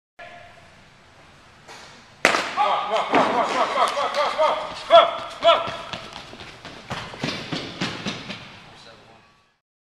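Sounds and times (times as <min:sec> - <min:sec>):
running footsteps: 0:03.3 - 0:08.8
person shouting: 0:04.2 - 0:05.9.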